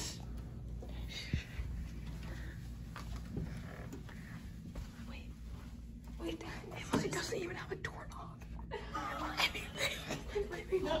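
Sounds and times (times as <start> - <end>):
whispered voices: 0.0 - 11.0.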